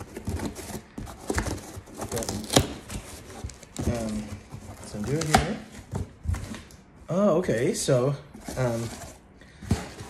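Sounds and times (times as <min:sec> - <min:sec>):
cardboard box being opened: 0:00.0 - 0:06.6, 0:08.4 - 0:10.0
cardboard cracking: 0:00.0 - 0:06.7.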